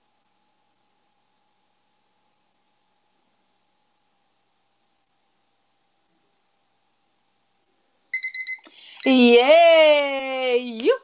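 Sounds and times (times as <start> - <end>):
electronic timer beeping: 8.2 - 9.3.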